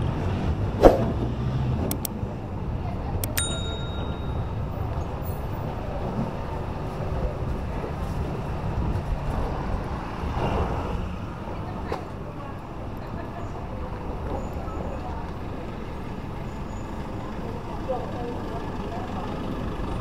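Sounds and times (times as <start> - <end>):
vehicle engine and road noise: 0.0 - 20.0
ringing ding: 3.2 - 4.8.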